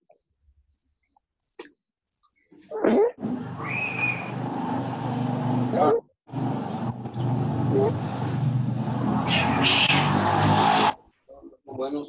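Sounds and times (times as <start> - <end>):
low engine-like hum: 3.2 - 10.9.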